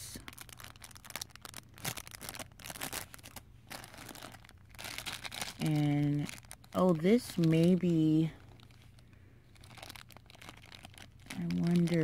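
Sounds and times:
plastic bags crinkling: 0.0s - 12.0s.

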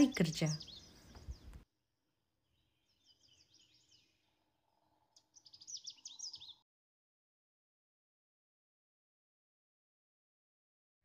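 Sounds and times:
birds chirping: 0.0s - 1.6s, 2.6s - 6.6s.

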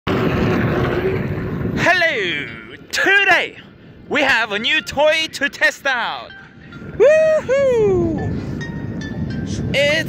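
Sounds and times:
board rolling over concrete: 0.1s - 1.8s.

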